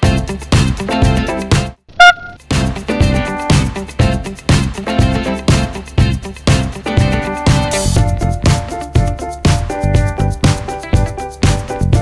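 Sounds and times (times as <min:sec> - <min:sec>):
upbeat funk music: 0:00.0 - 0:12.0
handheld horn toot: 0:02.0 - 0:02.4.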